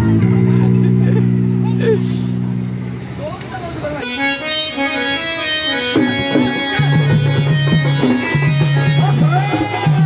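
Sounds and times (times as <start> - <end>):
electronic keyboard chord: 3.8 - 10.0.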